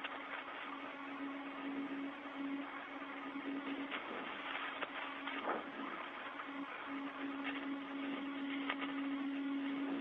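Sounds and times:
constant humming tone: 0.0 - 10.0
radio hiss: 0.0 - 10.0.

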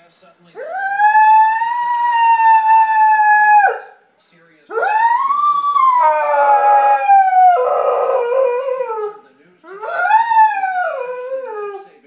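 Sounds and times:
dog howling: 0.6 - 3.9, 4.7 - 11.9.

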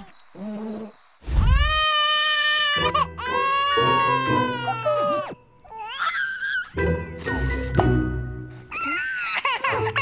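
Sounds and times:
background music: 2.6 - 10.0.

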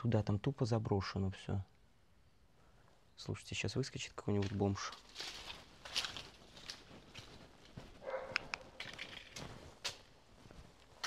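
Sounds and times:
footsteps on gritty floor: 4.4 - 11.0.

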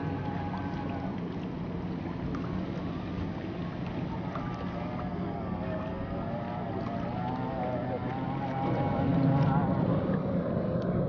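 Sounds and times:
distant powerboat engines whining: 0.0 - 11.0.

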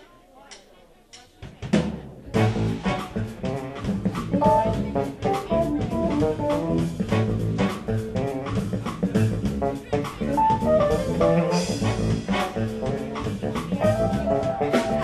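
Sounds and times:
smooth jazz trio playing: 2.0 - 15.0.

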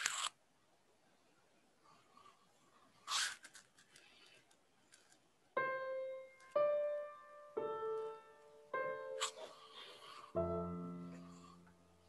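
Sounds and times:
slow piano music: 5.5 - 12.0.

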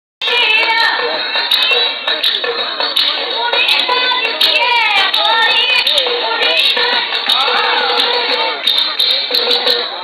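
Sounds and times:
girl singing devotional song: 3.4 - 8.3.

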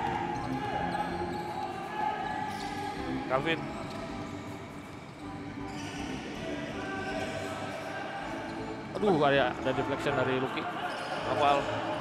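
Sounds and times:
indoor arena background noise: 0.0 - 12.0.

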